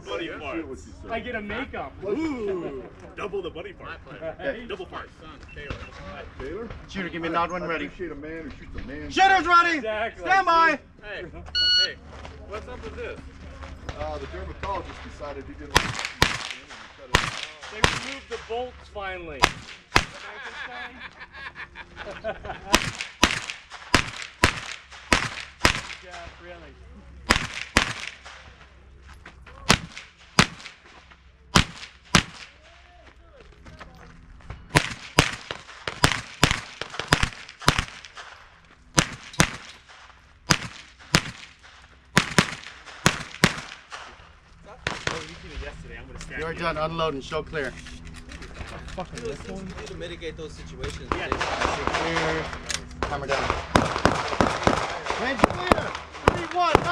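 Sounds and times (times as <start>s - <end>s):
people talking: 0.0s - 22.9s, 26.0s - 27.3s, 44.6s - 56.9s
rifle gunshots: 15.7s - 18.5s, 19.4s - 20.4s, 22.7s - 26.2s, 27.2s - 28.5s, 29.6s - 30.9s, 31.5s - 32.6s, 34.7s - 45.4s, 51.1s - 56.9s.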